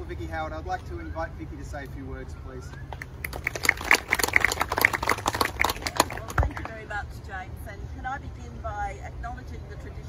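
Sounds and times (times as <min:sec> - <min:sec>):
audience clapping: 0:03.0 - 0:06.8.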